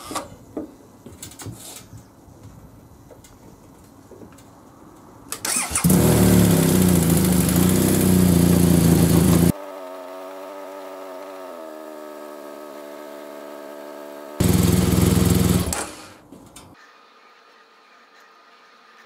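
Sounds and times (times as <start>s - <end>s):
motorcycle engine starting: 5.3s - 16.2s
motorcycle engine idling: 5.9s - 9.5s, 14.4s - 15.7s.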